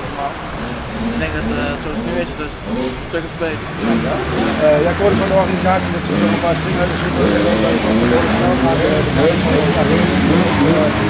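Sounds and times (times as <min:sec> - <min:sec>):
engine drone: 0:00.0 - 0:11.0
voices talking: 0:00.0 - 0:11.0.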